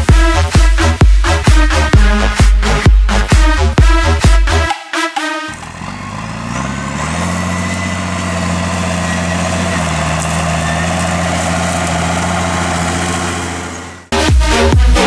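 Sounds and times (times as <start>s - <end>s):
tractor diesel engine under load: 5.4s - 14.9s.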